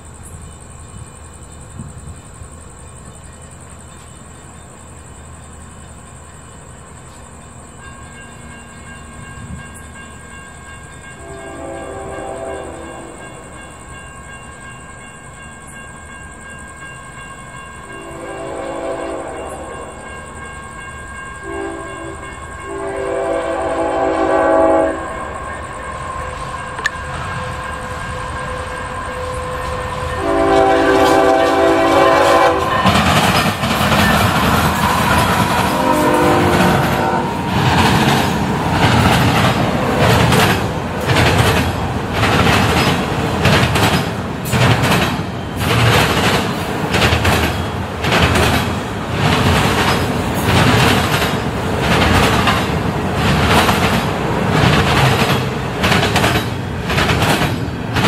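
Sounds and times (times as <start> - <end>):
train wheels rumbling: 0.0 - 58.0
locomotive air horn blasts: 11.2 - 13.2, 18.0 - 20.0, 21.4 - 33.0, 35.2 - 37.7.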